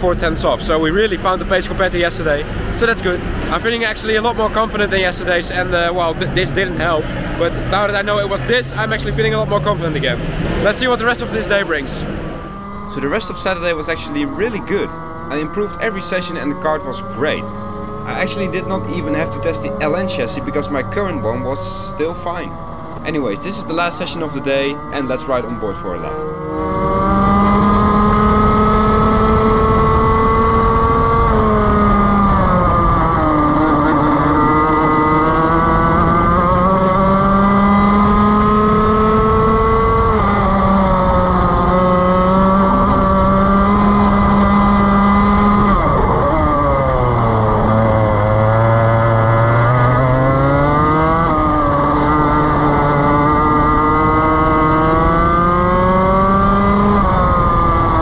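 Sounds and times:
kart engine revving: 0.0s - 58.0s.

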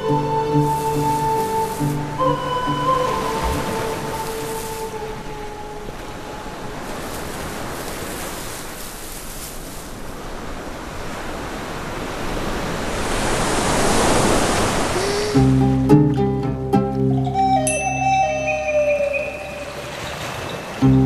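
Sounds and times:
sea surf rushing: 0.0s - 21.0s
held music note: 15.3s - 21.0s.

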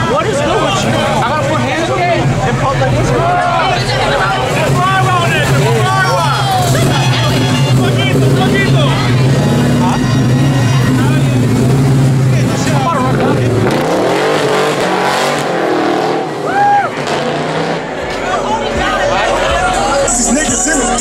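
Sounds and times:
car engine rumbling and revving: 0.0s - 21.0s
crowd voices: 0.0s - 21.0s.

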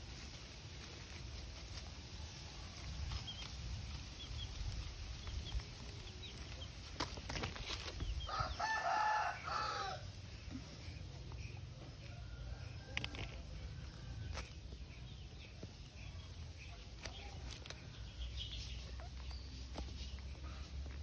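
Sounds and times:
rooster crowing: 8.3s - 10.1s.

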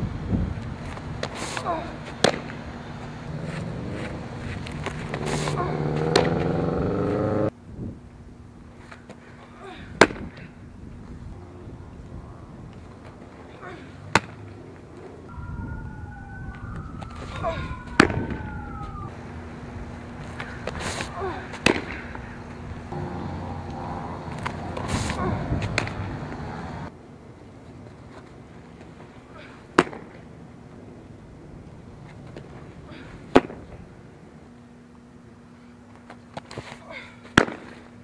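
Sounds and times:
steady hum: 1.9s - 9.6s, 18.4s - 27.7s.

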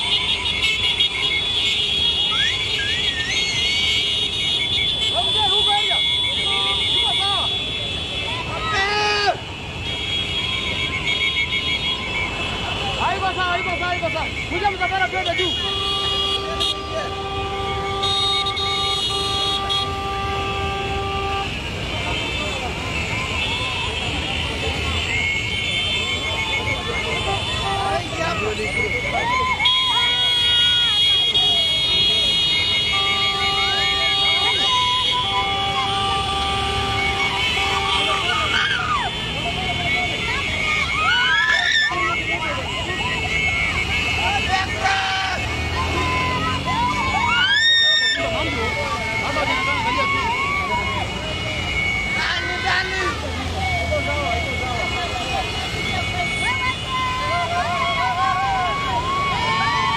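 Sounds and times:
crowd shouting and cheering: 0.0s - 59.9s
motorcycles running: 0.0s - 59.9s
horn blasts: 9.4s - 41.0s.

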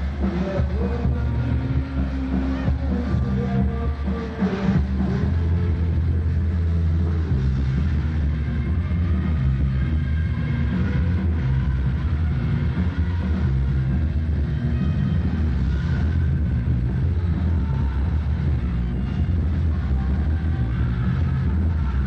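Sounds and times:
loud amplified rock band: 0.0s - 22.0s.

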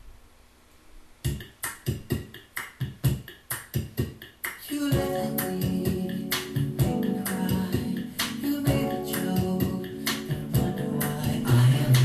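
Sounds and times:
sustained chords and bass: 4.9s - 12.0s.

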